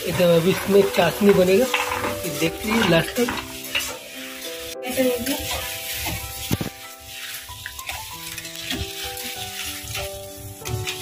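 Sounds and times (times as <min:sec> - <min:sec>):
hot oil sizzling: 0:00.0 - 0:11.0.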